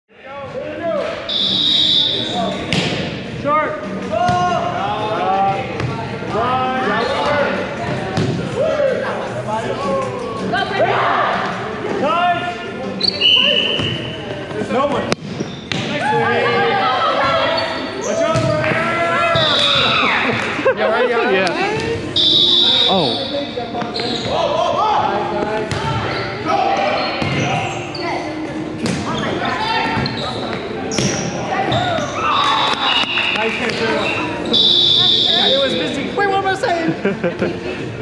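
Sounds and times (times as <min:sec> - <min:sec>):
players calling and talking: 0:00.1 - 0:38.0
volleyball being hit: 0:02.7 - 0:03.1.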